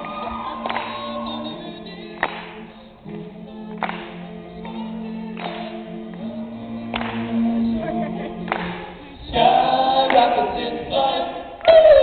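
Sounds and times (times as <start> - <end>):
men singing in harmony: 0.0 - 12.0.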